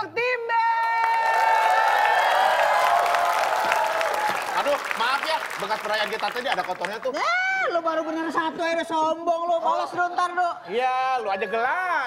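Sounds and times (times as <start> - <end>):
audience applauding: 0.8 - 7.2.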